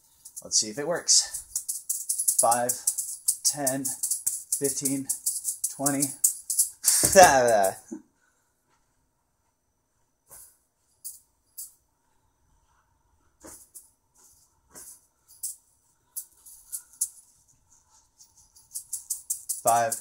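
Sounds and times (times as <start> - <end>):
juggling balls rattling: 0.0 - 7.9, 16.2 - 17.4, 18.2 - 20.0.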